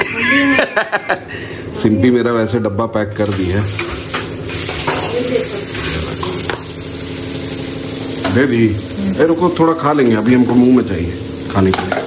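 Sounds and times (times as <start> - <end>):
batter sizzling on griddle: 1.7 - 12.0.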